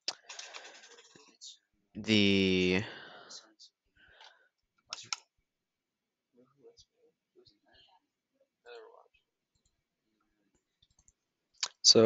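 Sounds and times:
person speaking: 0:00.0 - 0:03.7.

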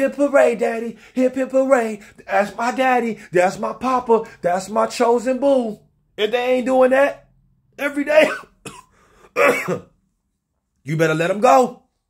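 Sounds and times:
man coughing: 0:08.1 - 0:10.0.

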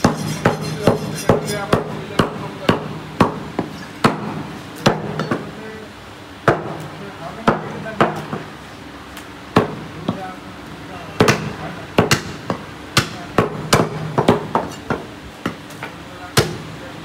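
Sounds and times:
cleaver chopping on wooden block: 0:00.0 - 0:05.5, 0:09.6 - 0:10.2, 0:11.2 - 0:15.6.

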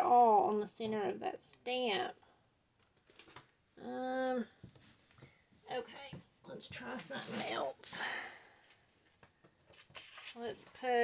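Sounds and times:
paper rustling: 0:09.2 - 0:11.0.

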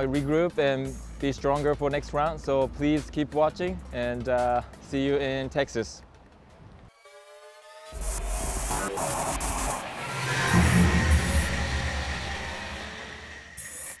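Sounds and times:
deep bass hit with glitchy crackle: 0:10.3 - 0:13.5.

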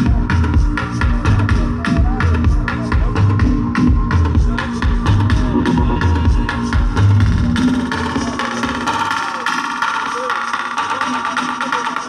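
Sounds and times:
electronic dance music: 0:00.0 - 0:12.0
heavy bass beats: 0:00.0 - 0:12.0.

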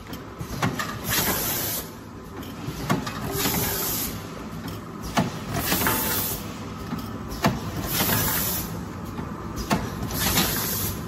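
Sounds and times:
machine mechanical hum: 0:00.0 - 0:11.0.

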